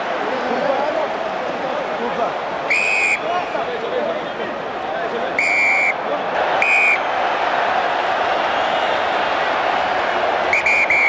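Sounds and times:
stadium crowd noise: 0:00.0 - 0:11.0
referee's whistle blast: 0:02.7 - 0:03.3, 0:05.4 - 0:06.0, 0:06.6 - 0:07.0, 0:10.6 - 0:11.0.

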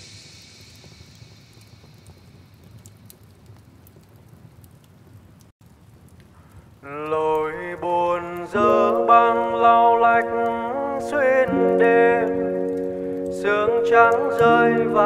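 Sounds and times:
faint crackling hiss: 0:00.0 - 0:15.0
lofi music: 0:08.3 - 0:15.0.

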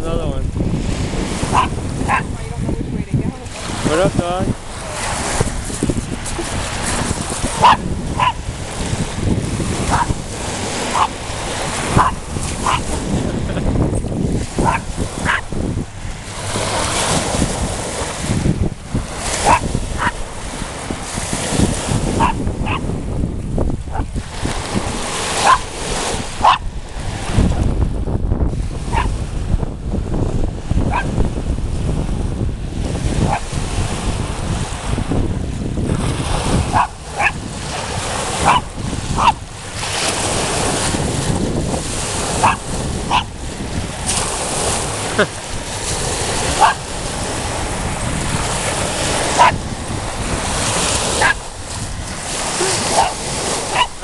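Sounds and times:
small waves breaking: 0:00.0 - 0:27.8, 0:28.4 - 0:54.0
wind rumble on microphone: 0:00.0 - 0:54.0
small dog barking: 0:01.5 - 0:02.3, 0:07.5 - 0:08.4, 0:09.9 - 0:10.2, 0:10.9 - 0:11.2, 0:12.0 - 0:12.9, 0:14.6 - 0:15.4, 0:19.4 - 0:20.2, 0:22.2 - 0:22.8, 0:25.4 - 0:25.7, 0:26.4 - 0:26.6, 0:28.9 - 0:29.1, 0:30.9 - 0:31.1, 0:36.7 - 0:37.4, 0:38.4 - 0:39.4, 0:42.4 - 0:43.3, 0:46.6 - 0:46.8, 0:49.4 - 0:49.6, 0:51.2 - 0:51.4, 0:52.6 - 0:54.0.

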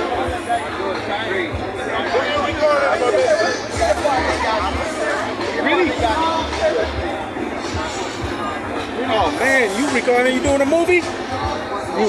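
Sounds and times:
background music: 0:00.0 - 0:12.0
overlapping indistinct chatter: 0:00.0 - 0:12.0.

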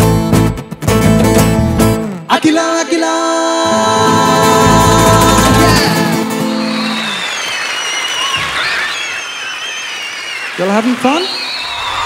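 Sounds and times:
live band note: 0:03.7 - 0:07.2
audience applauding: 0:04.0 - 0:12.0
high-pitched wavering cheers: 0:05.4 - 0:12.0.

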